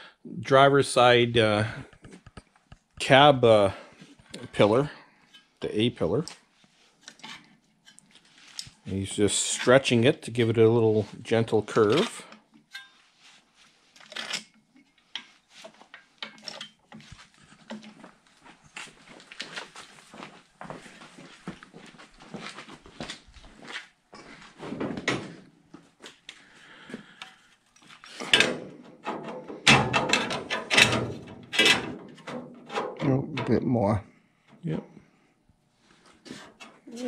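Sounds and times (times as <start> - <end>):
metal stretcher clacking: 28.2 - 33.6
sheet metal knocking and clattering: 28.3 - 33.0.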